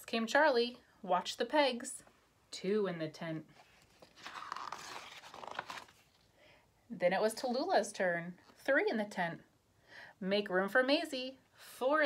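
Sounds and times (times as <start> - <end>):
paper page rustling: 3.6 - 6.3.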